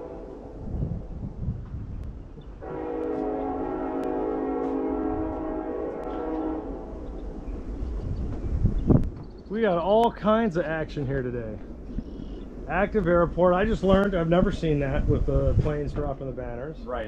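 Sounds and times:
train horn blast: 0:00.0 - 0:00.8, 0:02.6 - 0:07.3.

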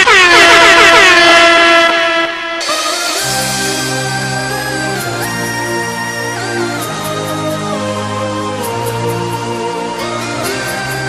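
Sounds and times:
air horn blasts: 0:00.0 - 0:04.6.

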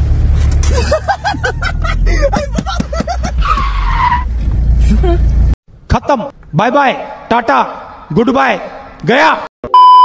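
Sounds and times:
car engine rumbling: 0:00.0 - 0:06.5.

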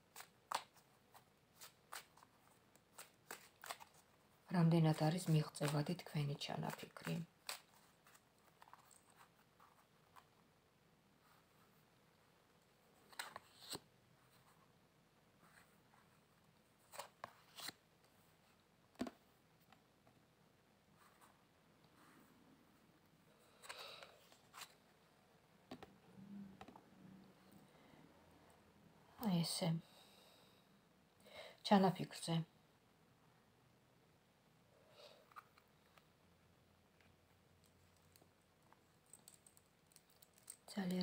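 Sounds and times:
cards being shuffled: 0:00.1 - 0:04.0, 0:13.1 - 0:13.8, 0:16.9 - 0:17.8.

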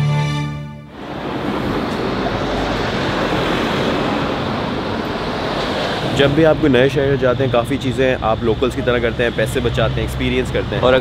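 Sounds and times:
held musical chord: 0:00.0 - 0:02.9
steady rushing noise: 0:00.9 - 0:11.0.

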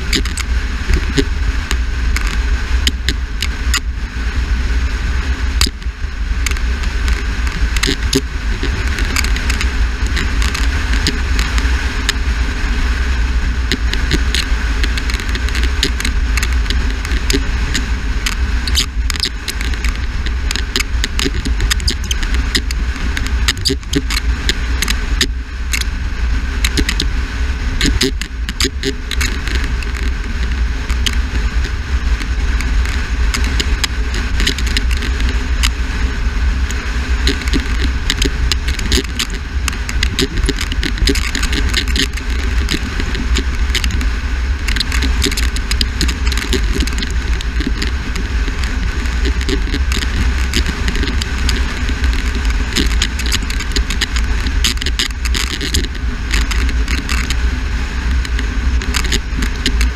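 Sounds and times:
car driving noise: 0:00.0 - 0:59.9
wind buffeting microphone: 0:00.0 - 0:59.9.

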